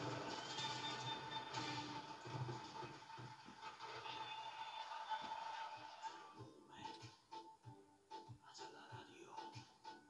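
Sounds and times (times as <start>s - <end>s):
faint television broadcast noise: 0.0s - 10.0s.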